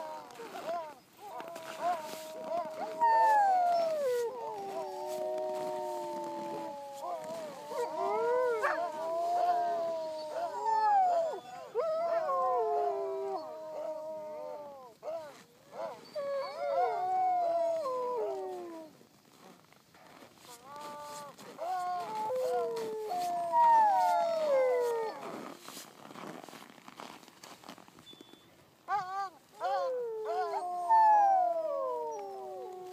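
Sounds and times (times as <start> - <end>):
huskies howling in chorus: 0.0 - 18.9, 20.8 - 25.4, 28.9 - 32.9
huskies howling: 1.3 - 14.8.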